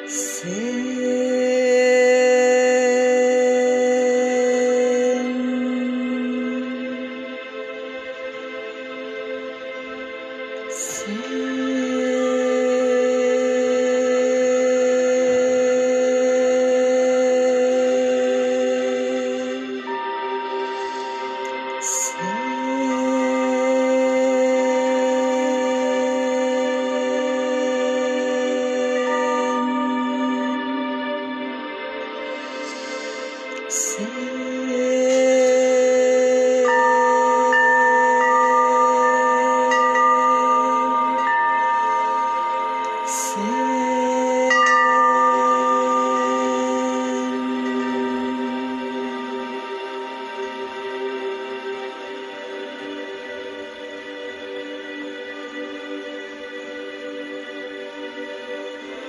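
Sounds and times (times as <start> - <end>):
woman chanting: 0.0 - 8.0, 10.7 - 53.1
held drone: 10.8 - 54.5
bell-like chimes ringing: 28.2 - 33.5, 36.6 - 52.2.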